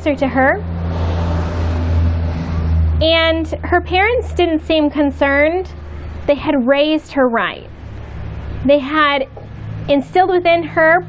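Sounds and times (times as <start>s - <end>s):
constant low hum: 0.0s - 11.0s
loud rushing noise: 0.5s - 6.4s, 7.7s - 10.0s.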